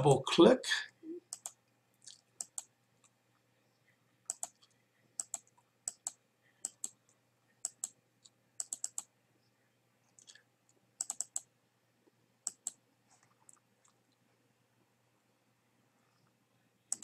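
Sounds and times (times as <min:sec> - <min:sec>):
computer mouse clicking: 0:01.3 - 0:01.6, 0:02.4 - 0:03.2, 0:04.3 - 0:07.0, 0:07.6 - 0:08.0, 0:08.6 - 0:09.1, 0:11.0 - 0:11.5, 0:12.4 - 0:14.0.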